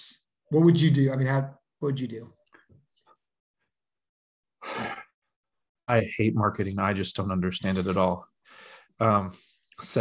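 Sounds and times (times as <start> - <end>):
man speaking: 0.0 - 2.3, 5.9 - 8.2, 9.0 - 10.0
man sighing: 4.6 - 5.0.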